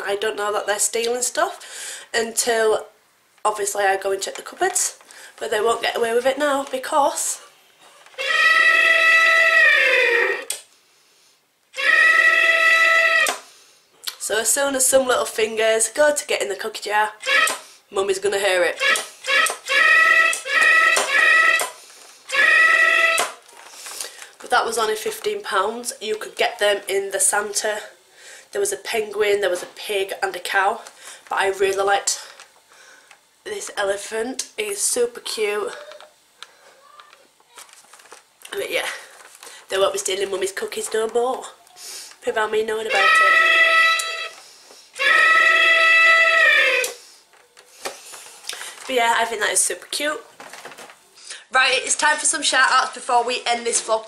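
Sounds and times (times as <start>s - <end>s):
tinny recorded phrase from speaker: 0.0s - 7.5s, 39.7s - 44.4s
electronic elephant trumpeting call: 8.1s - 10.6s, 11.7s - 13.4s, 17.2s - 17.6s, 18.8s - 23.4s, 42.8s - 44.4s, 45.0s - 47.1s.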